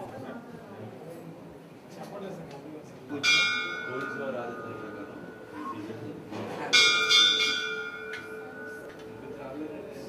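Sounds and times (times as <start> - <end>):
temple bell ringing: 3.1 - 10.0.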